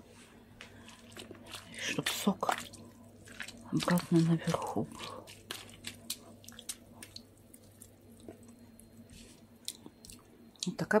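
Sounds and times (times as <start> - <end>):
cabbage squelching in brine: 0.6 - 10.3.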